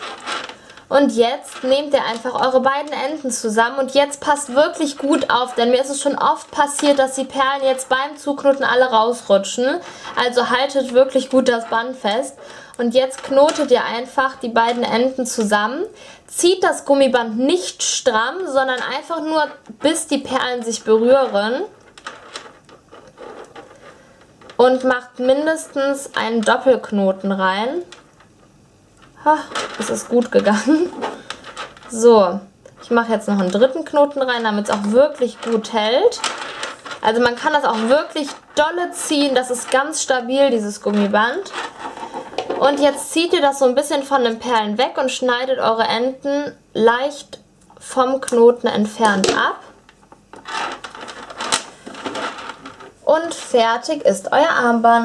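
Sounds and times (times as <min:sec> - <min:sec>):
beads clicking and rubbing: 0:00.0 - 0:08.9, 0:29.0 - 0:32.1, 0:32.7 - 0:43.3, 0:49.1 - 0:53.5
soft cord rustles: 0:00.0 - 0:09.0, 0:18.4 - 0:24.8, 0:27.8 - 0:44.1, 0:49.1 - 0:53.6.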